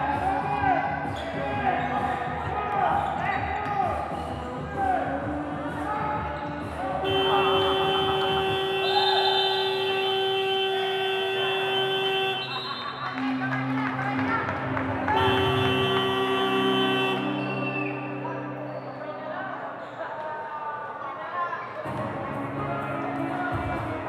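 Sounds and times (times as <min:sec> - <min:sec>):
scoreboard buzzer long tone: 0:07.1 - 0:12.5, 0:15.2 - 0:17.3.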